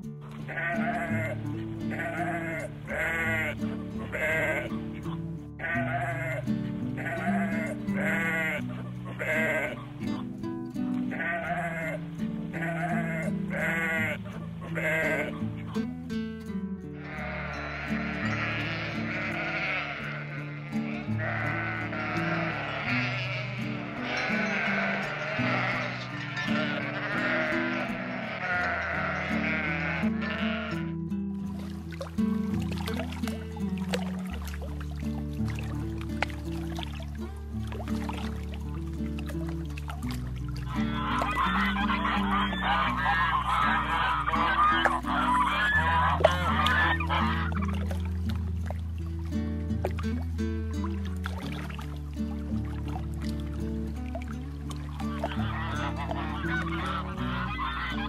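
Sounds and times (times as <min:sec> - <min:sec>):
sheep bleating: 0:00.4 - 0:10.2, 0:11.1 - 0:15.9, 0:16.9 - 0:31.1, 0:40.7 - 0:47.8.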